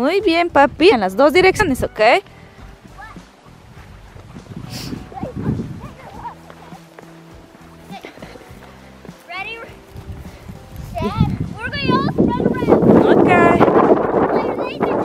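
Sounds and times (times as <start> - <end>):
soft music with held notes: 0.0 - 14.9
children calling out: 4.9 - 6.8, 7.8 - 8.4.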